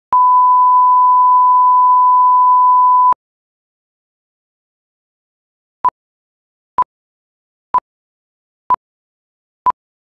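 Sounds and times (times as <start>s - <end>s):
high pure test tone beep: 0.1s - 3.2s.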